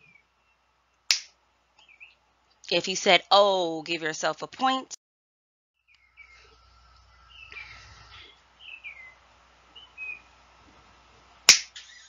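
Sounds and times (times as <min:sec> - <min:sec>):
finger snap: 0:01.1 - 0:01.3, 0:11.5 - 0:11.9.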